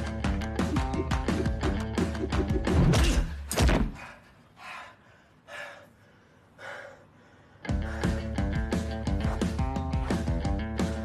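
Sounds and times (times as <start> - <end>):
man gasping for breath: 3.9 - 8.5.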